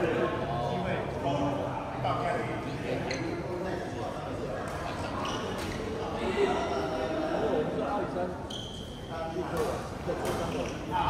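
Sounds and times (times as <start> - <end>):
people talking: 0.0 - 11.0
short high squeak: 8.5 - 9.1.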